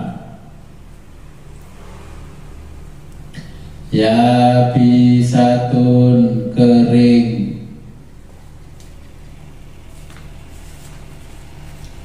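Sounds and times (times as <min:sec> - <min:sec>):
man chanting recitation: 0:00.0 - 0:00.6, 0:03.9 - 0:07.9
low steady hum: 0:00.0 - 0:12.0.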